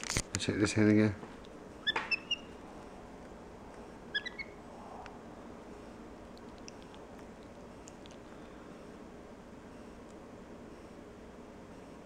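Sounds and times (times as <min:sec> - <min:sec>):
monkey giving high-pitched chirps: 0:01.8 - 0:02.5, 0:04.1 - 0:04.6.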